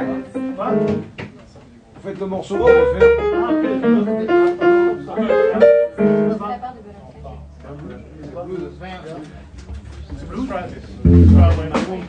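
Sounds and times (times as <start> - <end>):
live jazz jam music: 2.6 - 6.4, 11.0 - 12.0.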